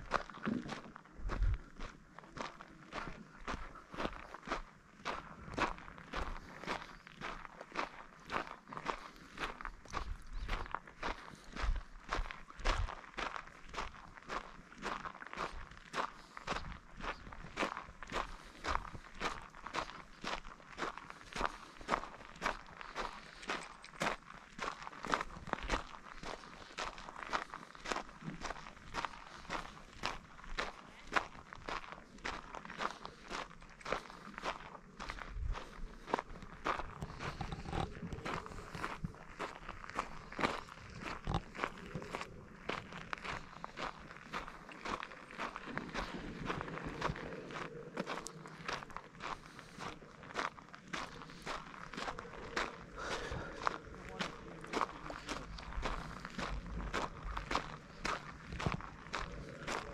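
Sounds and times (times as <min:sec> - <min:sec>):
footsteps crunching on gravel: 0:00.0 - 0:59.9.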